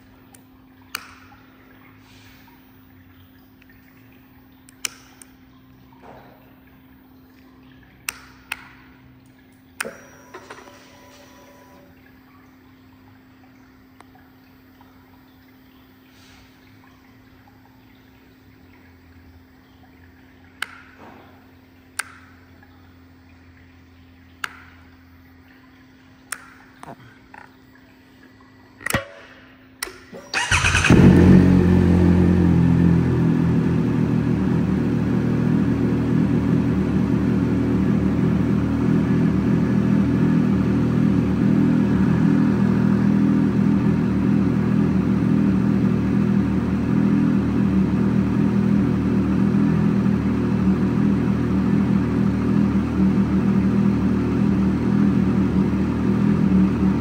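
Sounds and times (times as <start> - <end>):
low hum: 16.6 - 57.0.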